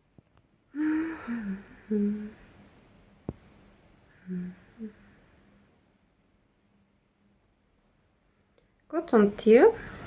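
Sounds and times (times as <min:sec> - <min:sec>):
woman humming: 0:00.8 - 0:02.4, 0:04.2 - 0:05.2.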